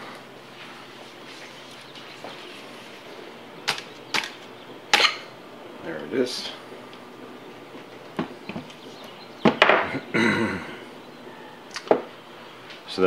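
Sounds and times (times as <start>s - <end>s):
sharp wooden knocks and clicks: 9.4s - 9.9s.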